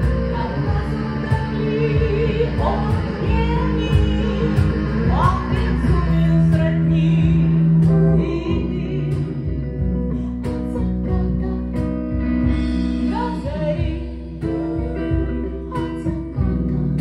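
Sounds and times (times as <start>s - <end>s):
electric guitar: 0.0s - 17.0s
woman singing: 0.0s - 17.0s.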